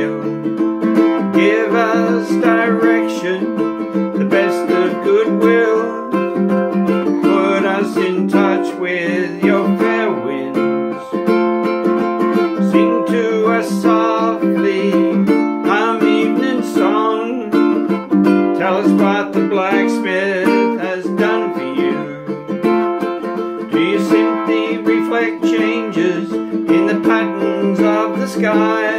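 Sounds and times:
man singing: 0.0 - 28.9
ukulele strumming chords: 0.0 - 28.9.

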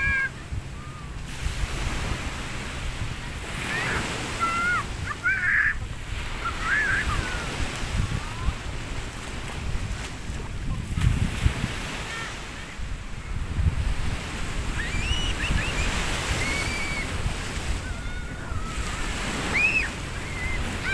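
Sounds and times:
small waves washing onto sand: 0.0 - 20.9
wind rumbling on microphone: 0.0 - 20.9
short high wavering calls: 14.8 - 17.2, 17.8 - 20.9.

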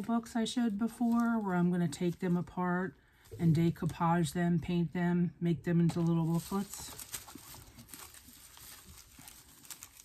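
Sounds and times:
soft rustling of packages: 0.0 - 5.0, 5.6 - 10.0.

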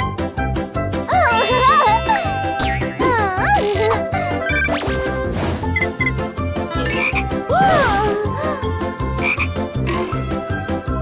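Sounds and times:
cartoon frog croaking: 9.2 - 10.0.

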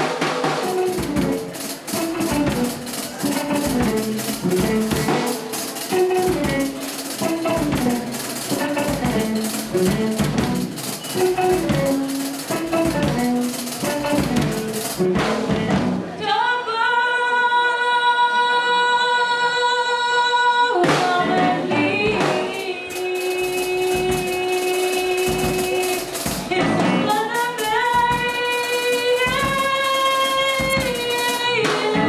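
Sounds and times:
woman singing into a microphone: 15.4 - 32.0.

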